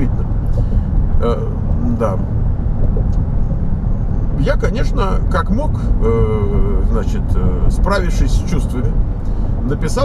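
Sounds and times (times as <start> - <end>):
road and engine rumble in car: 0.0 - 10.0.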